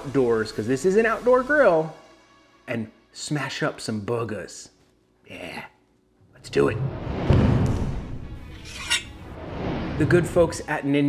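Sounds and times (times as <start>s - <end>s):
music: 0.0s - 4.0s.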